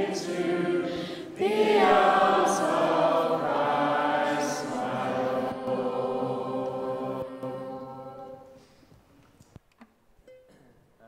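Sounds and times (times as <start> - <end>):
congregation singing: 0.0 - 8.8.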